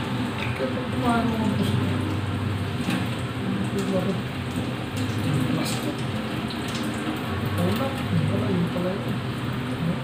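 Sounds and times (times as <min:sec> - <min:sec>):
water pattering: 0:00.3 - 0:09.2.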